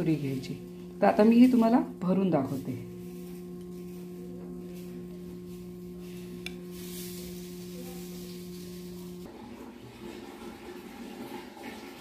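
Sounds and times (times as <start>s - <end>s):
steady low hum: 0.0s - 9.3s.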